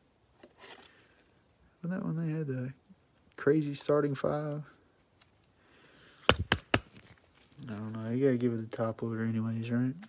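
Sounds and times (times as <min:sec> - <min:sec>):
faint rustle: 0:06.9 - 0:08.6.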